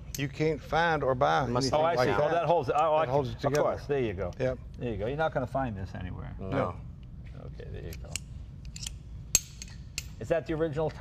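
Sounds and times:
metal tools clicking and clinking: 7.9 - 10.3.

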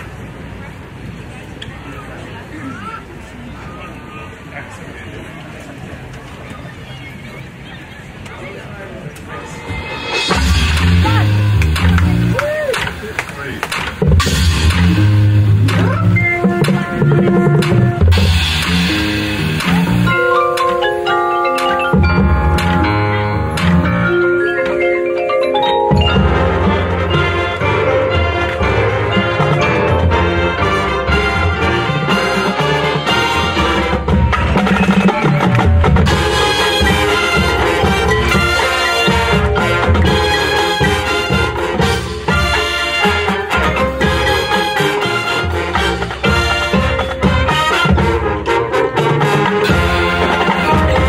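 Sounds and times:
drums: 9.2 - 51.0
marching band playing: 9.4 - 51.0
low brass chords: 9.8 - 12.4, 14.0 - 35.0, 35.8 - 51.0
mallet percussion: 9.8 - 12.6, 13.7 - 51.0.

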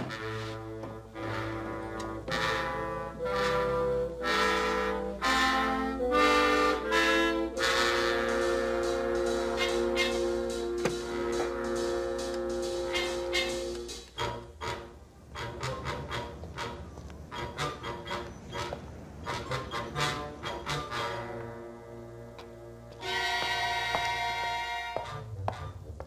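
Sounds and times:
orchestral music with brass: 0.0 - 26.0.

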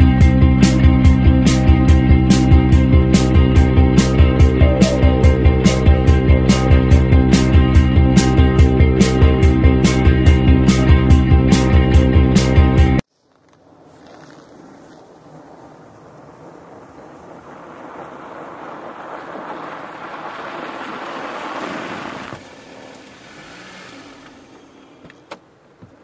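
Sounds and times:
car engine and tyres on snow: 12.4 - 26.0.

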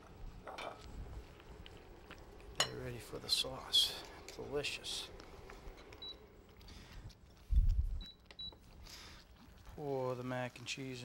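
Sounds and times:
induction burner beeps: 5.8 - 6.5, 8.0 - 8.6.

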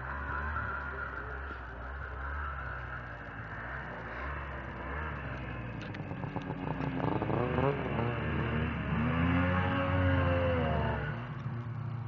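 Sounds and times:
snowmobile engine running: 0.0 - 11.3.

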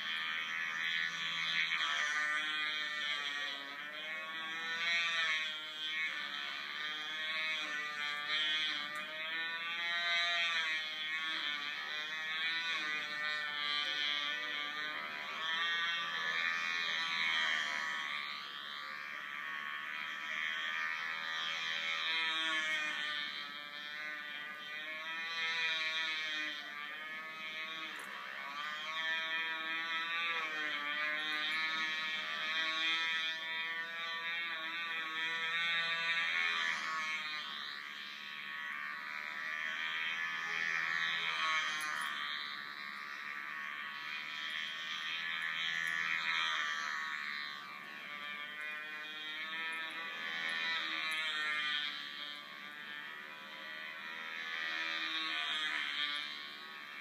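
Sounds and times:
model airplane engine whine: 0.0 - 57.0.

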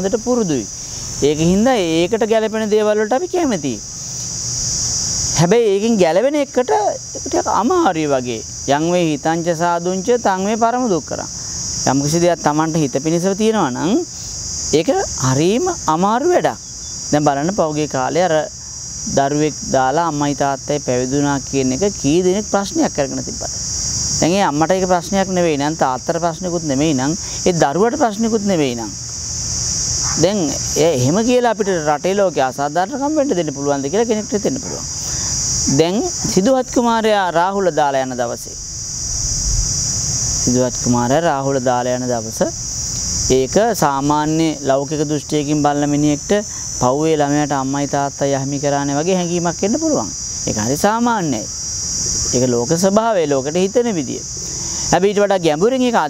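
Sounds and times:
man speaking: 0.0 - 3.9, 5.4 - 23.6, 24.2 - 29.0, 30.0 - 38.6, 40.4 - 42.6
high-pitched insect drone: 0.0 - 56.0.

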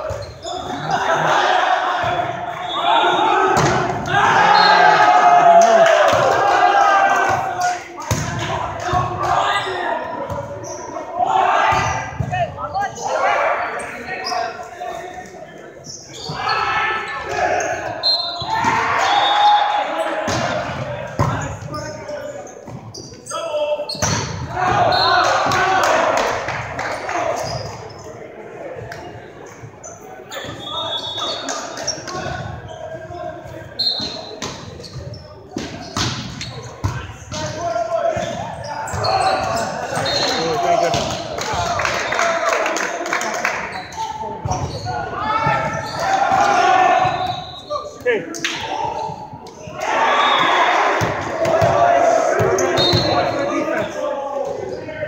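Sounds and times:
players shouting: 0.0 - 22.5, 23.2 - 27.9, 35.8 - 55.0
volleyball struck and bouncing: 8.1 - 9.1.

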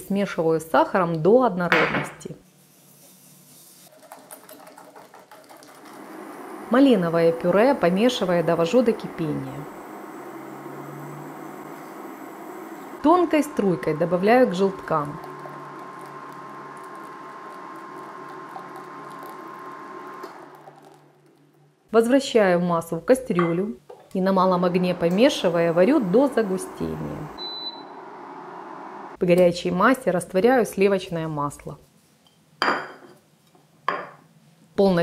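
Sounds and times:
whisk swishing through liquid: 2.7 - 5.8.

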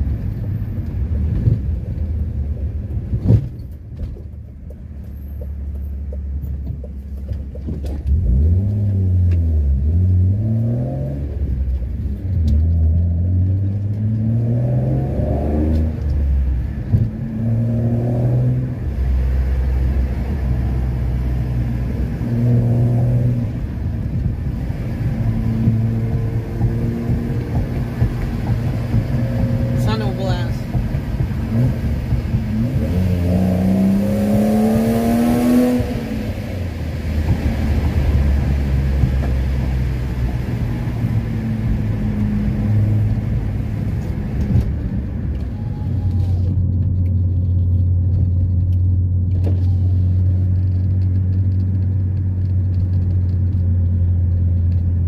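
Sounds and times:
car engine accelerating through gears: 0.0 - 55.0.

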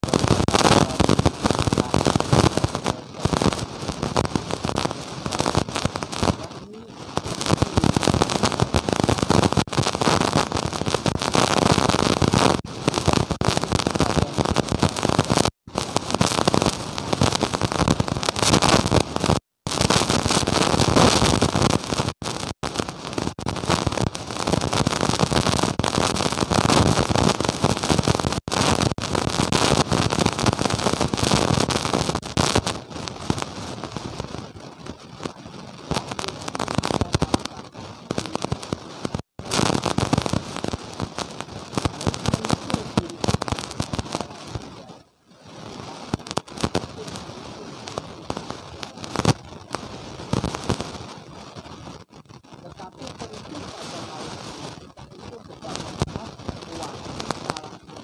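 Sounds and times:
distorted audio crackling: 0.0 - 58.0
man speaking: 6.3 - 7.0, 14.0 - 14.5, 35.9 - 38.5, 52.6 - 54.4, 55.0 - 58.0.

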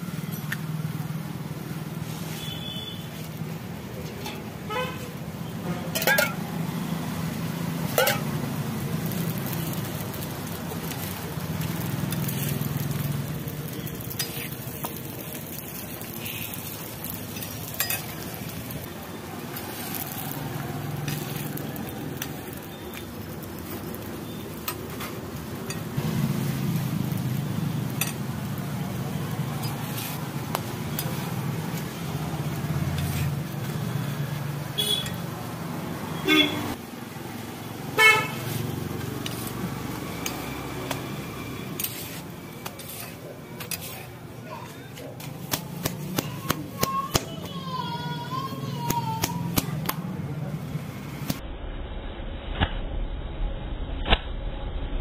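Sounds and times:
parottas frying on a griddle: 0.0 - 51.4
steel spatula scraping metal: 14.1 - 14.6, 29.6 - 30.2, 32.9 - 33.4, 38.4 - 40.5, 41.6 - 44.2.

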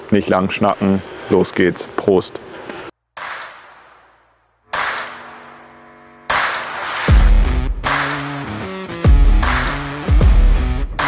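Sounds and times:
impact sound effects: 3.2 - 8.5
ringing chord: 5.1 - 7.7.

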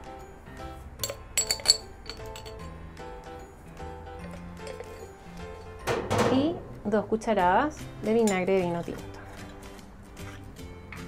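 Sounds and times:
background music: 0.0 - 11.0
clinks on metal mixing bowl: 1.0 - 2.7, 8.1 - 8.6.

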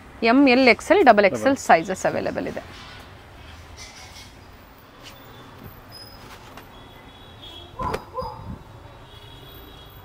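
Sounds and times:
dog barking: 7.8 - 8.6.

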